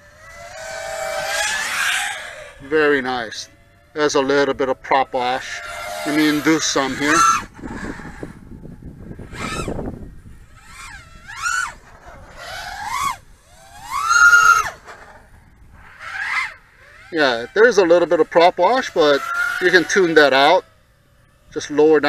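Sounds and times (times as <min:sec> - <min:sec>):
drone motors whining: 0:00.0 - 0:22.0.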